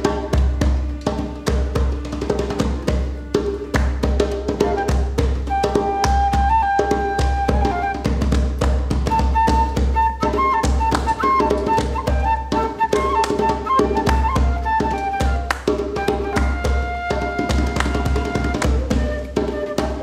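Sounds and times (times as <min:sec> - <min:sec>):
djembe beaten by hand: 0:00.0 - 0:20.0
flute melody: 0:04.3 - 0:20.0.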